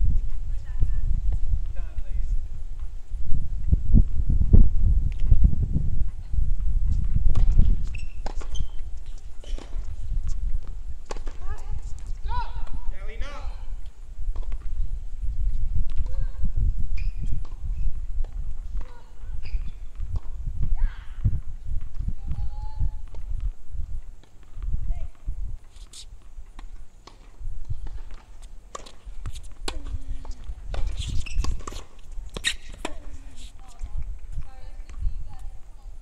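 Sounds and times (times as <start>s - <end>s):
tennis balls bouncing and struck: 7.2s - 13.4s, 14.3s - 14.8s, 17.3s - 20.4s, 23.0s - 35.6s.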